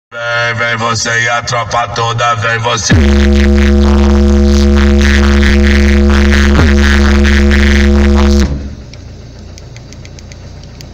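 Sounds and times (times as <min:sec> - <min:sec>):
subwoofer deep bass tone: 0:00.2 - 0:09.0.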